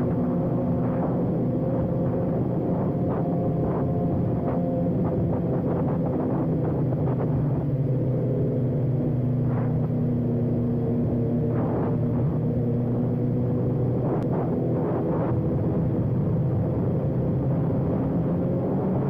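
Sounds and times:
other motorcycles riding alongside: 0.0s - 19.0s.

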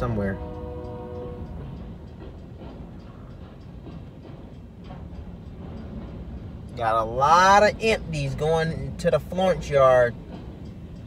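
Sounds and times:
train wheels rumbling on rail: 0.0s - 11.0s
faint irregular clicks: 0.5s - 6.8s.

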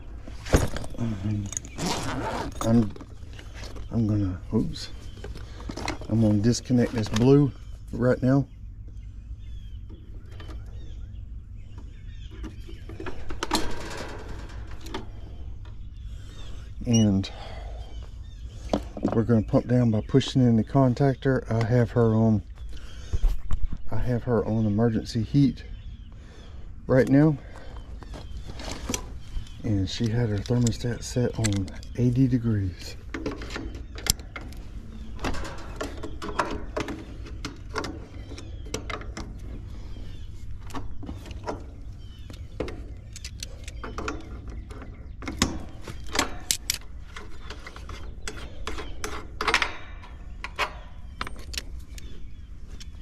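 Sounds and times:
steady low hum: 0.0s - 53.0s.

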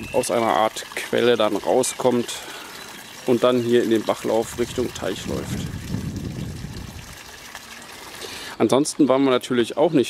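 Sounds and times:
water trickling from pipe: 0.0s - 10.0s.

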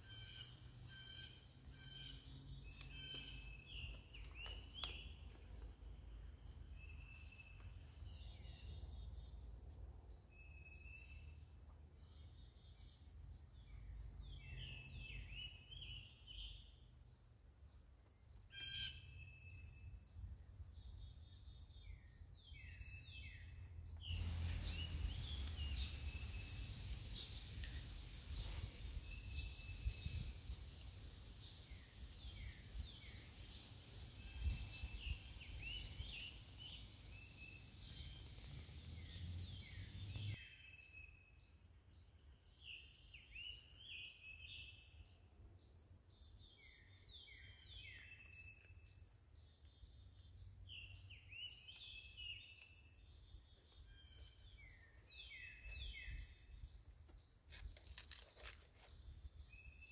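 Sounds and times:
songbirds chirping: 0.0s - 59.9s
low wind rumble: 24.0s - 40.4s.

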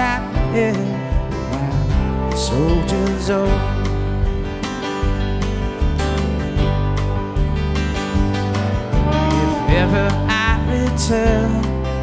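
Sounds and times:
live band playing: 0.0s - 12.0s
pitch-bending melodic line: 8.7s - 11.0s.

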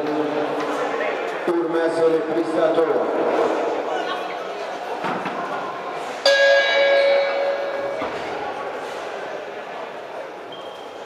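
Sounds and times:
boxing ring bell ringing: 6.3s - 8.1s.

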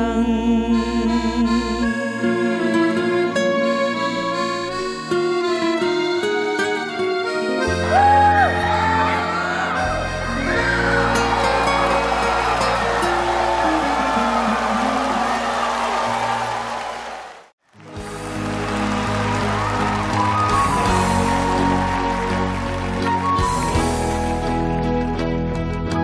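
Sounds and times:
live band instrumental music: 3.1s - 16.1s, 17.8s - 26.0s.

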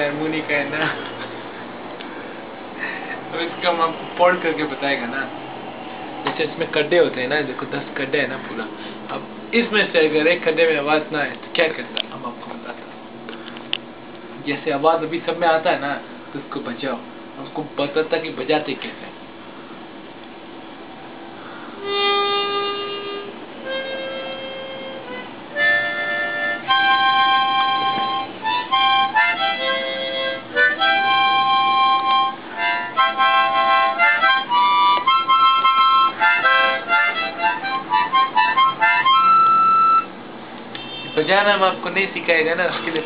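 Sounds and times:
harmonica playing: 21.6s - 40.2s.

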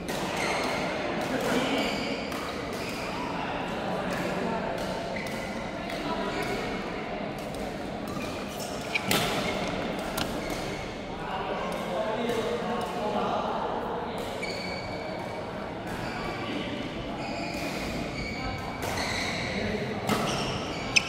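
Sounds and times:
voices and chatter: 0.0s - 21.0s
racket hitting shuttlecock: 7.4s - 11.0s
short squeaks: 14.4s - 15.0s, 20.3s - 21.0s.

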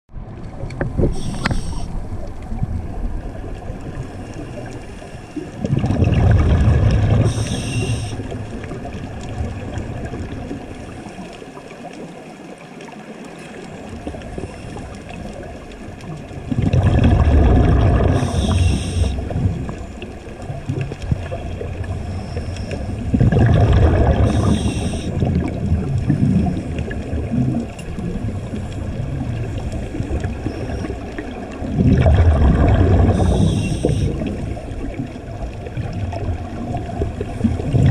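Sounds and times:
steady underwater hiss: 0.4s - 37.9s
diver exhaling bubbles: 5.4s - 10.4s, 16.4s - 37.9s.

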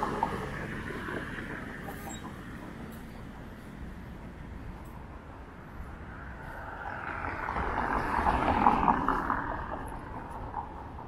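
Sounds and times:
vehicle passing: 5.5s - 11.0s.

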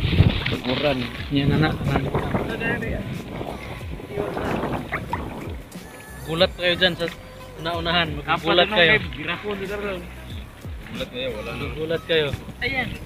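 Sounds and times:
seawater sloshing and splashing: 0.0s - 13.0s
water streaming off net: 0.0s - 13.0s
men's voices: 0.5s - 13.0s.

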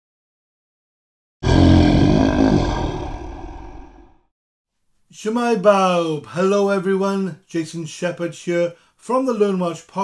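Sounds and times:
dragon roar: 1.4s - 4.3s.

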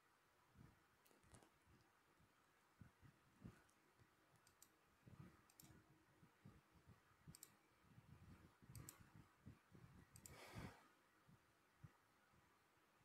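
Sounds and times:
computer mouse clicks: 1.0s - 1.9s, 3.5s - 5.8s, 7.2s - 7.6s, 8.2s - 9.2s, 10.1s - 10.8s
soft low thumps: 5.0s - 12.5s.

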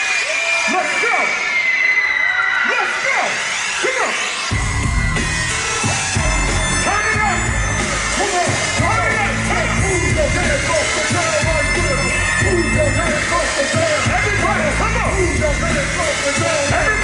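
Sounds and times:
crowd cheering and shouting: 0.0s - 17.0s
hip-hop beat with heavy bass: 2.9s - 17.0s.

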